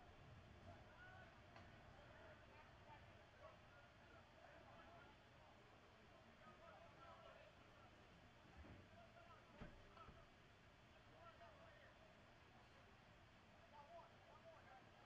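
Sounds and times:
distant indistinct voices: 0:00.1 - 0:15.0.

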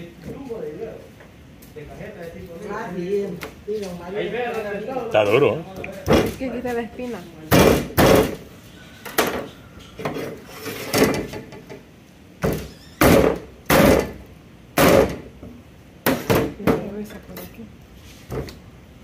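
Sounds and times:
hatchet chopping on wooden board: 0:07.5 - 0:08.4, 0:13.0 - 0:14.2, 0:14.8 - 0:15.2.

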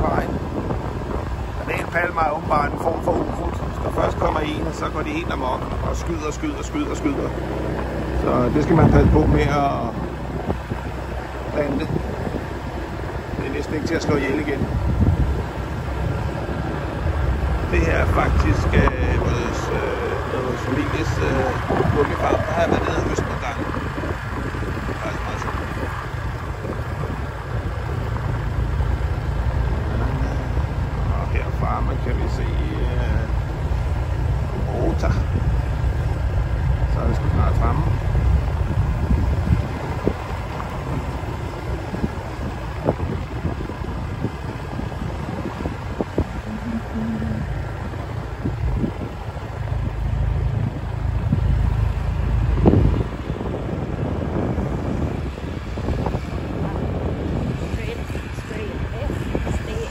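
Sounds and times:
vehicle rumbling on dirt track: 0:00.0 - 0:59.9
wind rushing over microphone: 0:00.0 - 0:59.9.

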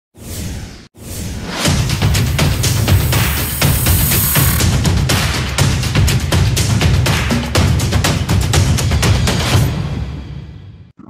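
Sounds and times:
whoosh sound effects: 0:01.0 - 0:04.6
electronic music with heavy beat: 0:01.6 - 0:09.6.

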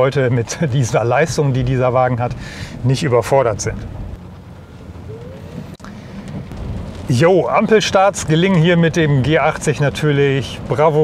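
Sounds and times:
road and tyre rumble: 0:00.0 - 0:11.0
faint rising whine: 0:04.2 - 0:06.4.

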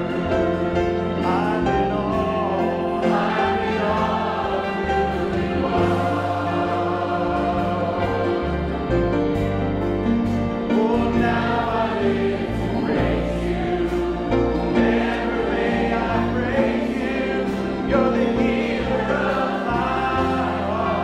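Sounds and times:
congregation singing worship song: 0:00.0 - 0:21.0.

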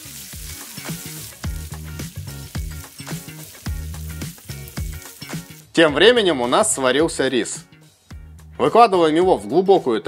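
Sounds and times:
ham sizzling in frying pan: 0:00.0 - 0:05.8
background music with steady beat: 0:00.0 - 0:10.0.

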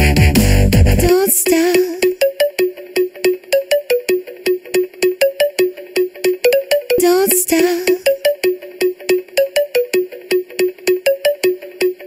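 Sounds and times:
repeated synth notes: 0:00.0 - 0:12.0.

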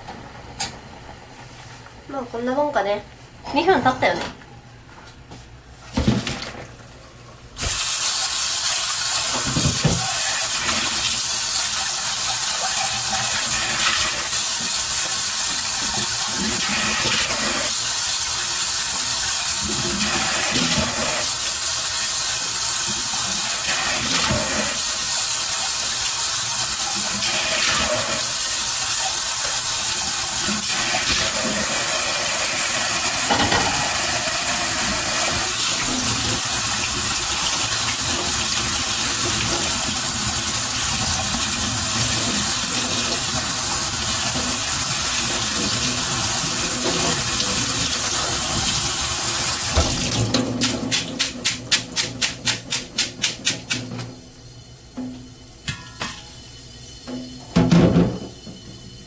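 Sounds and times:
tap running into sink: 0:09.2 - 0:11.0, 0:33.2 - 0:54.1, 0:57.1 - 0:58.8.

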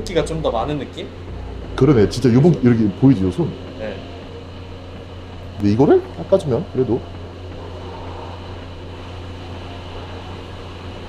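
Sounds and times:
low machine hum: 0:00.0 - 0:11.0
even hiss: 0:05.4 - 0:11.0.

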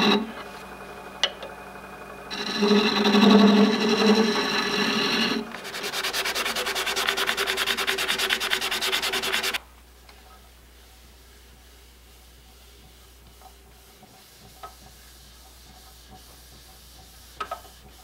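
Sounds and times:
sandpaper scratching spinning wood: 0:00.0 - 0:00.6, 0:02.3 - 0:09.6
lathe humming: 0:00.0 - 0:09.6
turning tool cutting wood: 0:00.0 - 0:09.6.

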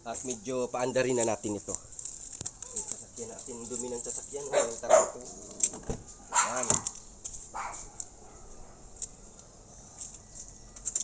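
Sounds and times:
dog barking: 0:04.5 - 0:05.2, 0:06.3 - 0:06.9, 0:07.6 - 0:08.9.

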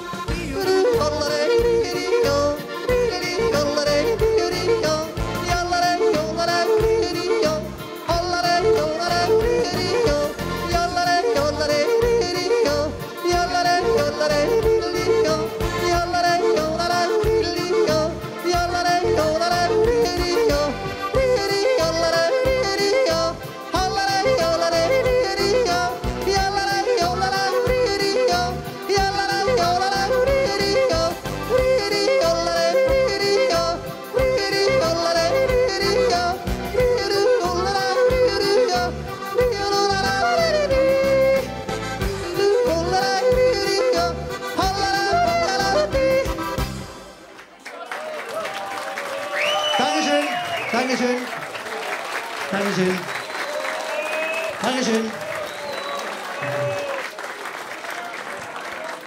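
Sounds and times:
man yodeling into a microphone: 0:00.0 - 0:46.7
backing music: 0:00.0 - 0:47.6.

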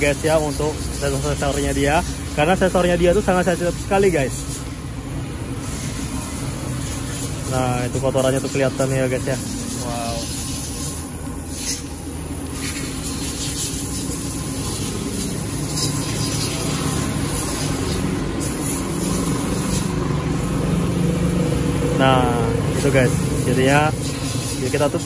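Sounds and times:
steady engine-like hum: 0:00.0 - 0:25.0
aerosol spray hisses: 0:05.6 - 0:20.7, 0:22.8 - 0:25.0.

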